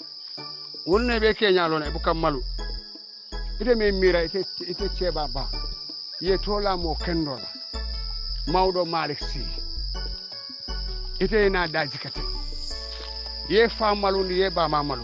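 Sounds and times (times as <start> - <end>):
person talking: 0.9 - 2.5, 3.6 - 5.6, 6.2 - 7.5, 8.5 - 9.6, 11.2 - 12.3, 13.5 - 15.0
background music with bass line: 0.9 - 15.0.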